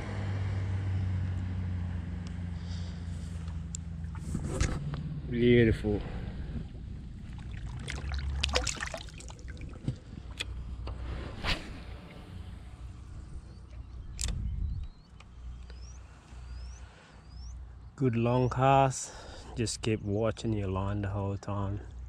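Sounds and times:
wind rumble on microphone: 0:04.0 - 0:08.4, 0:09.4 - 0:15.2
fishing rod swish: 0:04.1 - 0:04.9, 0:10.9 - 0:12.6
short rising chirps: 0:11.2 - 0:17.6.

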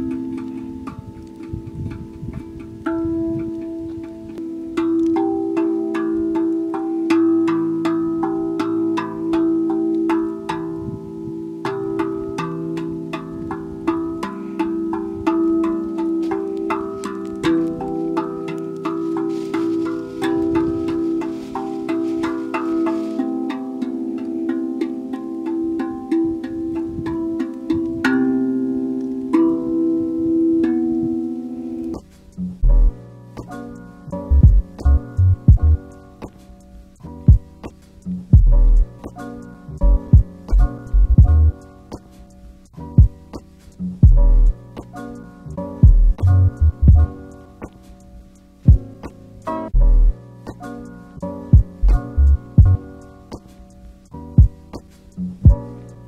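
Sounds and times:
handpan melody: 0:00.0 - 0:56.0.

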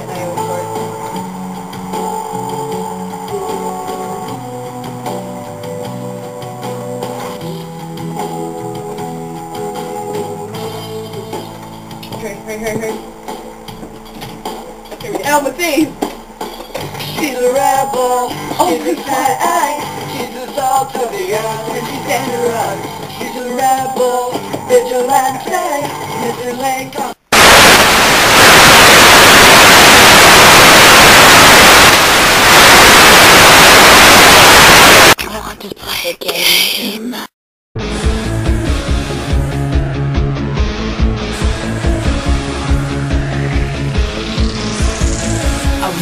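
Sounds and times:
television static hiss: 0:26.2 - 0:35.2.

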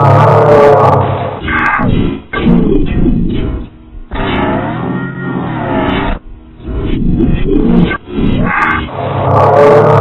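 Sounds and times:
distorted low growling tone: 0:00.0 - 0:10.0.

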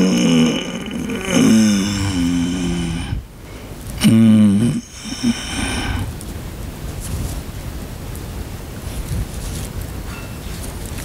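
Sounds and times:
man's low drawn-out vocal: 0:00.0 - 0:03.3, 0:03.9 - 0:06.2
quiet room noise: 0:00.0 - 0:11.0.

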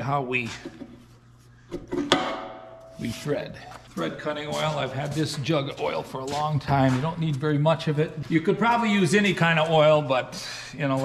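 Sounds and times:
ringing metal note: 0:02.1 - 0:03.4.

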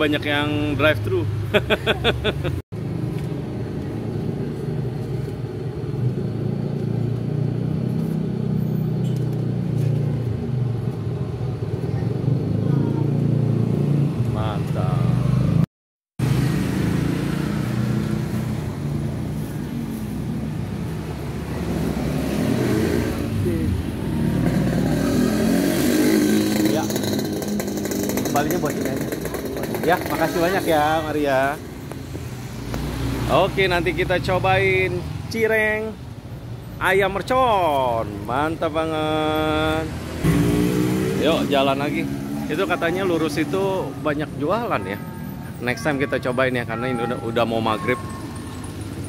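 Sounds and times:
motorcycles going by: 0:00.0 - 0:15.6, 0:16.2 - 0:35.6, 0:36.9 - 0:49.0.

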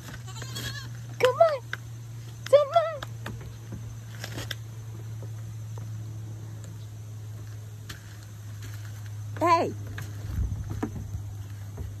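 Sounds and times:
steady low hum: 0:00.0 - 0:12.0
hooves thumping on metal: 0:08.6 - 0:12.0.

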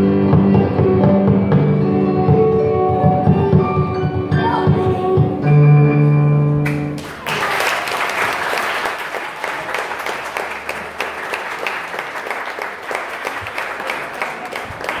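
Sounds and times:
audience applauding: 0:06.6 - 0:15.0.

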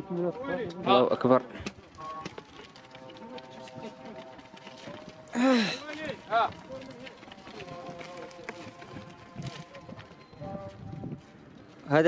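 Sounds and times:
sheep shuffling and scuffing: 0:01.5 - 0:12.0.

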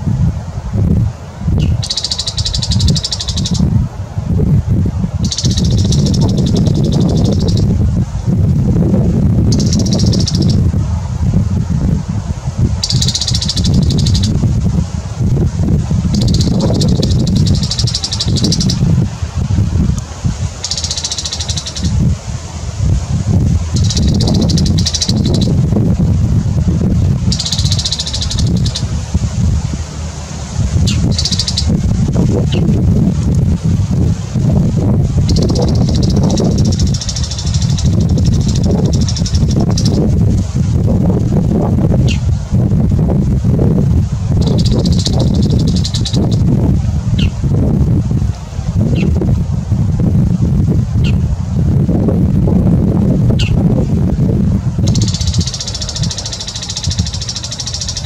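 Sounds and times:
steady low rumble: 0:00.0 - 0:58.0.

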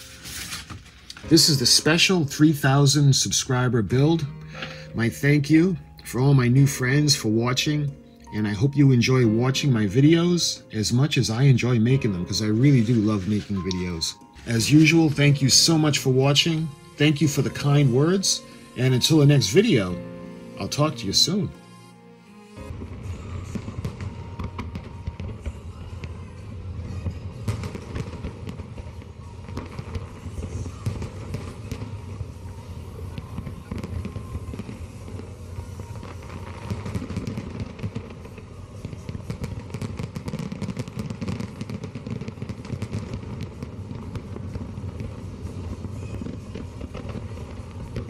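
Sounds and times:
fireworks crackling and popping: 0:00.0 - 0:20.0, 0:22.6 - 0:48.0.

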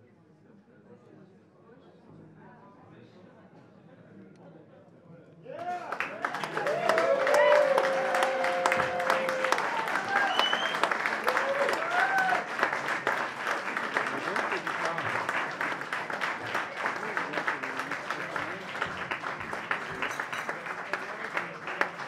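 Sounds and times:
shouts and whoops: 0:05.6 - 0:12.5
audience applauding: 0:05.6 - 0:22.0.

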